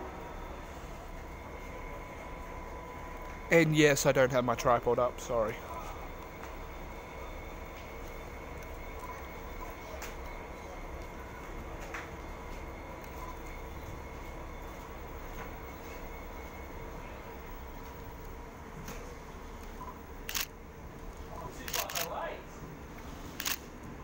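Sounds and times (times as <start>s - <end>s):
diesel railcar drone: 0.0s - 24.0s.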